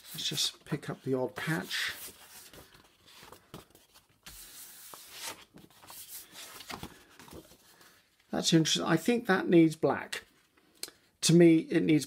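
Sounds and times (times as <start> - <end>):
paper rustling and rubbing: 0.0 - 8.0.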